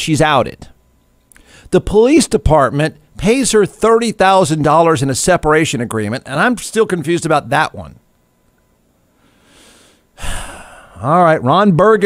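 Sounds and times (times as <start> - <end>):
man breathing: 1.3 - 1.7, 9.1 - 11.0.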